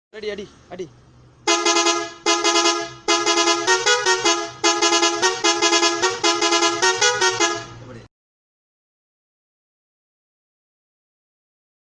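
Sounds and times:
rickshaw musical horn tune: 0:01.5 - 0:07.8.

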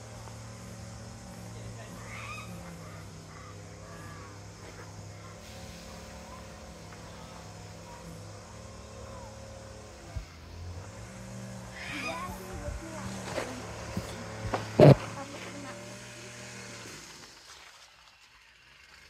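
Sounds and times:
engine idling hum: 0:00.0 - 0:19.0.

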